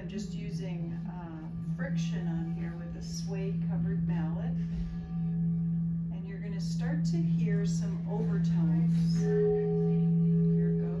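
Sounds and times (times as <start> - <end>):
singing bowl tone: 0.0 - 11.0
mallet rubbing bowl rim: 0.5 - 11.0.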